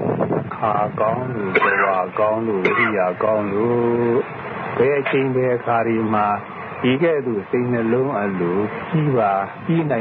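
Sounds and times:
man speaking: 0.6s - 10.0s.

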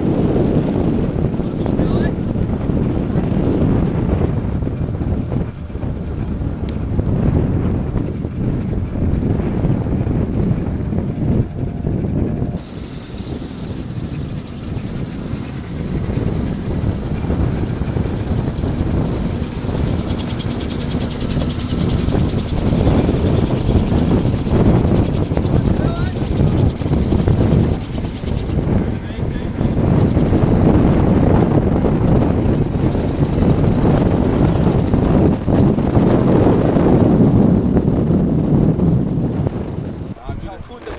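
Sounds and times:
wind buffeting microphone: 0.0s - 40.9s.

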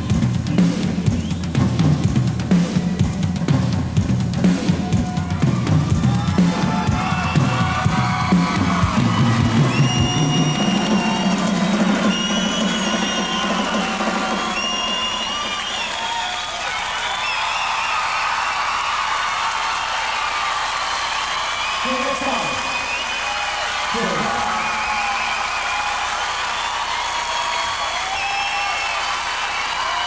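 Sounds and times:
shrill whistles: 0.0s - 1.6s, 6.6s - 19.2s, 19.8s - 30.0s
rock band drums and bass: 0.0s - 14.7s
crowd cheering: 4.4s - 30.0s.

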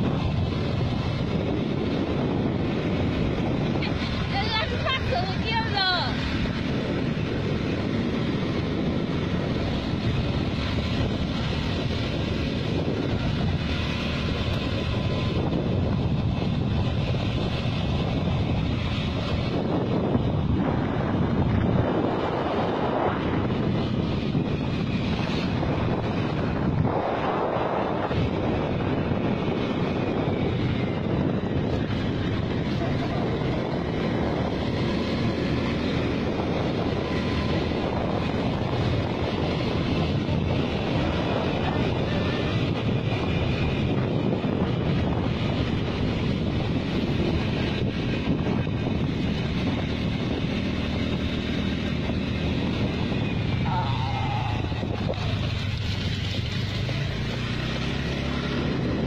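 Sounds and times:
road noise: 0.0s - 59.0s
scooter engine: 0.0s - 59.0s
wind buffeting microphone: 0.0s - 59.0s.

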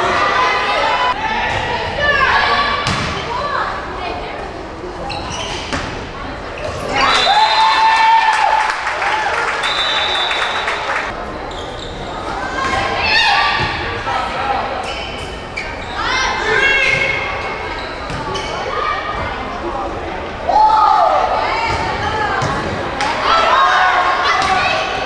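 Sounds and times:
people shouting in a gymnasium: 0.0s - 4.0s, 6.8s - 8.8s, 12.1s - 14.8s, 20.4s - 25.0s
volleyball striking and hitting floor: 2.8s - 3.2s.

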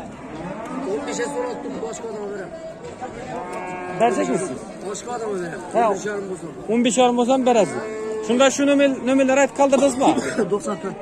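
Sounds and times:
cow mooing: 0.0s - 2.2s, 3.2s - 4.6s, 7.4s - 9.6s.

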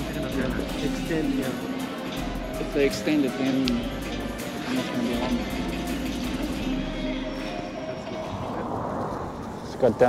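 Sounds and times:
indistinct background voices: 0.0s - 10.0s.

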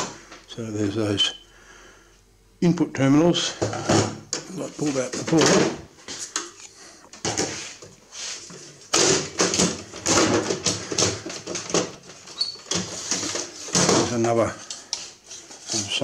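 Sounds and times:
metal and plastic clattering: 8.9s - 14.8s.

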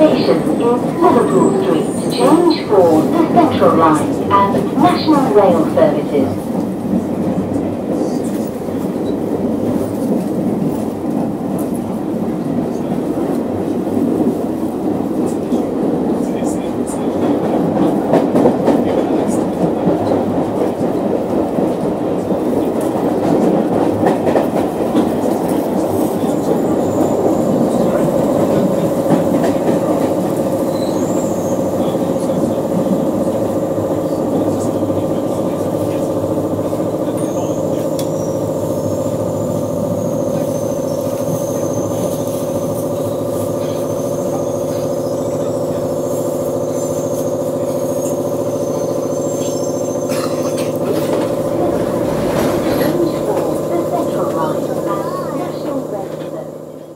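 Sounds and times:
train rumbling on track: 0.0s - 56.9s.

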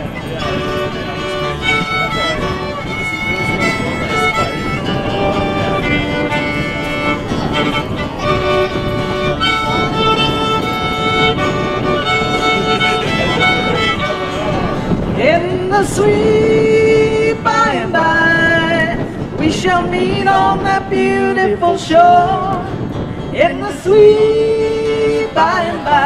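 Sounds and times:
fiddle melody: 0.0s - 26.0s
upright bass: 0.0s - 26.0s.

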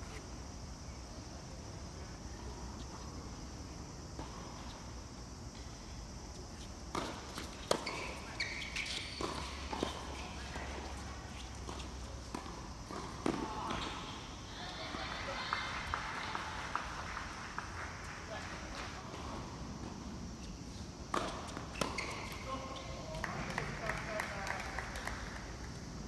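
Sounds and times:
tennis rackets hitting balls: 6.8s - 14.1s.

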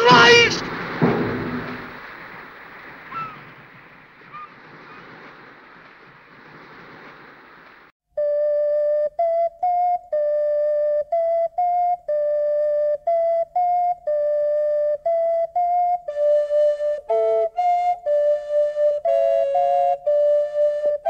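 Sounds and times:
flute playing a simple tune: 0.0s - 0.6s, 8.1s - 21.0s
surf: 0.0s - 7.9s
wind: 0.0s - 7.9s.

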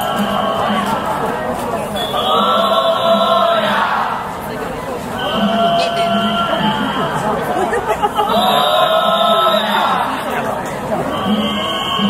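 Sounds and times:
crowd chanting together: 0.0s - 12.0s.

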